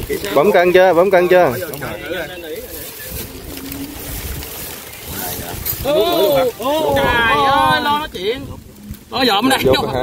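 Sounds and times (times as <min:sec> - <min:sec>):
faint voices talking: 0:00.0 - 0:10.0
wind rumbling on microphone: 0:00.0 - 0:10.0.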